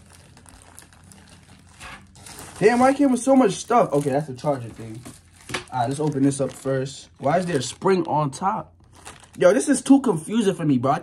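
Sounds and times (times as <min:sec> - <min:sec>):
plastic packaging rustling: 0:00.0 - 0:10.0.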